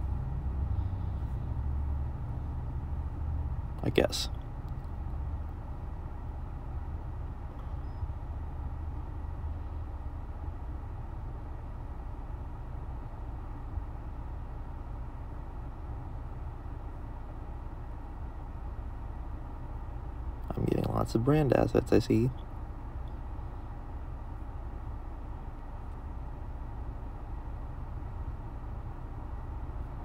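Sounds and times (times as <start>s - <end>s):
low background rumble: 0.0s - 30.0s.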